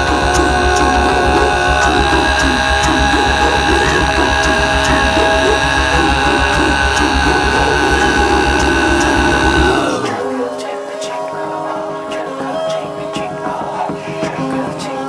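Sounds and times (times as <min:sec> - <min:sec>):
droning music with pulsing bass: 0:00.0 - 0:10.2.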